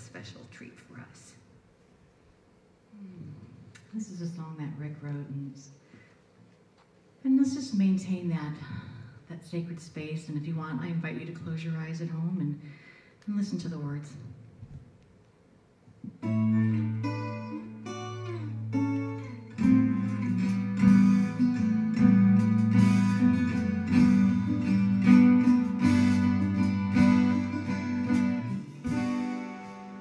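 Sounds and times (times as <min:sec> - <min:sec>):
guitar playing: 0:16.1 - 0:30.0.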